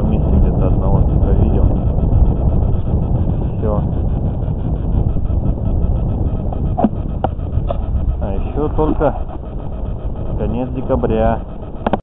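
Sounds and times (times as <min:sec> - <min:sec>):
loud low rumble: 0:00.0 - 0:12.0.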